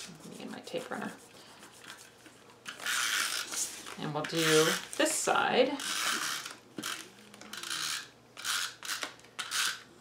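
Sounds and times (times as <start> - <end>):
tape runner rasping on paper: 0.0 - 3.6, 4.3 - 4.9, 5.8 - 9.8.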